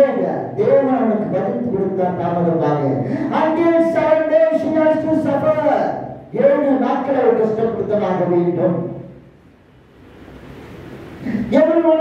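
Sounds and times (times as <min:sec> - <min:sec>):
man speaking: 0:00.0 - 0:09.1, 0:11.2 - 0:12.0
faint steady background noise: 0:00.0 - 0:12.0.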